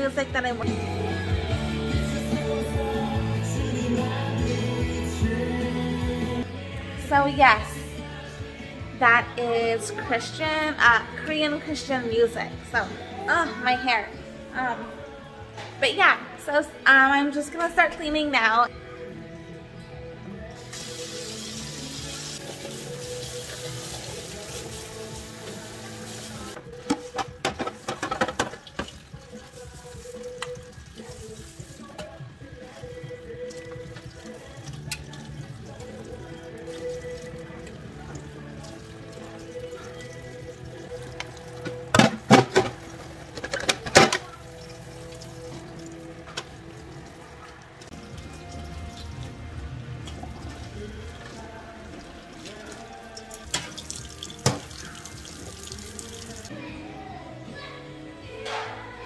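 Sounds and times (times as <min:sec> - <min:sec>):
christian music: 0:00.7 - 0:16.3, 0:18.7 - 0:27.8, 0:29.4 - 0:59.0
dishes and pans clattering: 0:26.8 - 0:29.0, 0:41.6 - 0:44.4
tap running into a metal sink: 0:53.5 - 0:55.9.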